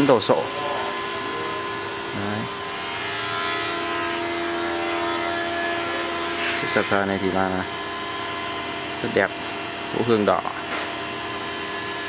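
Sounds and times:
power tools whining: 0:00.0 - 0:12.0.

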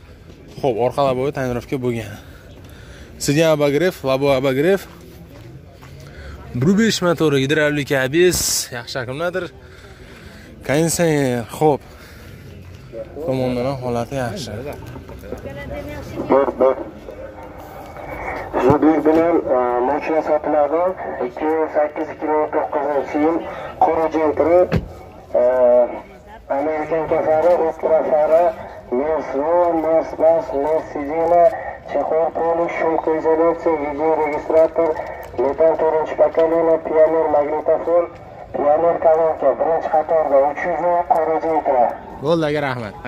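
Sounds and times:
person talking over radio: 0:15.3 - 0:42.0.

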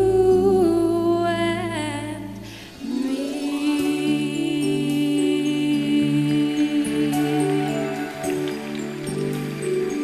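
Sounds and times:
woman singing into microphone: 0:00.0 - 0:08.3
backing track accompaniment: 0:00.0 - 0:10.0.

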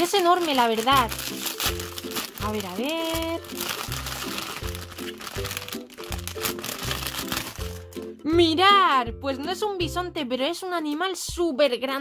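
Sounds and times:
foil packet crinkling: 0:00.0 - 0:08.1
background music with steady beat: 0:01.0 - 0:12.0.

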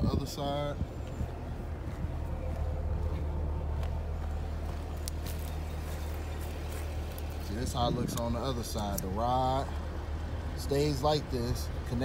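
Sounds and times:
car engine idling: 0:00.2 - 0:12.0
footsteps on pavement: 0:00.8 - 0:10.0.

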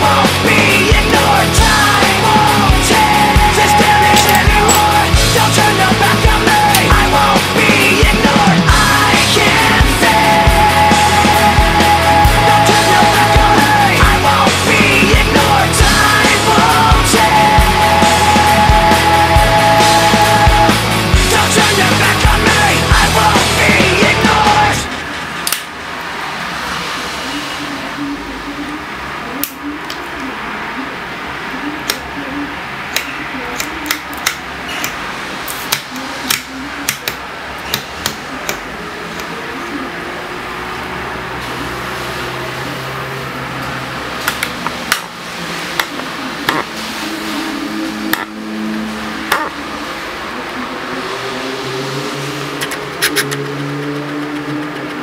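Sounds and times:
steady indoor hum: 0:00.0 - 0:55.0
sharp clicks and taps: 0:04.0 - 0:05.0.

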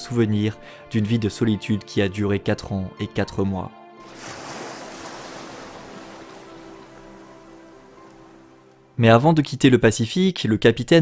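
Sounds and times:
ocean waves rushing: 0:04.0 - 0:08.9.

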